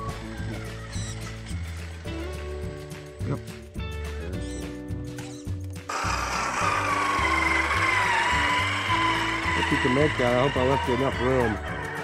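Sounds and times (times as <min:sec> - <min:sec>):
music: 0:00.0 - 0:12.0
electric motor and gearbox whine: 0:05.8 - 0:12.0.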